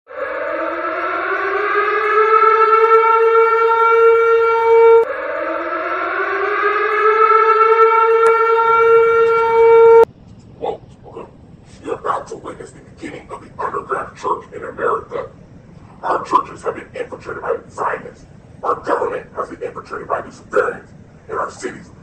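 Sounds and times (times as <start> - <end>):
warning siren wailing: 0.1 - 10.1.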